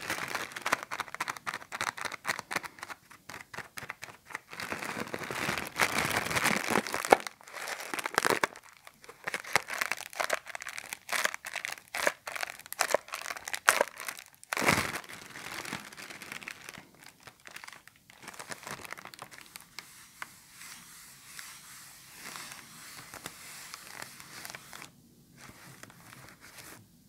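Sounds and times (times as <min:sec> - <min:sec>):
plastic bag crinkling: 0:00.0 - 0:19.9, 0:22.1 - 0:26.8.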